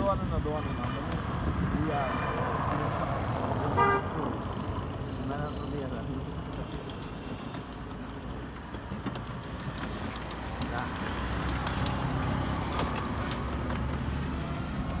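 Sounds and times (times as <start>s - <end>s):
motor vehicle rumbling: 0.0s - 15.0s.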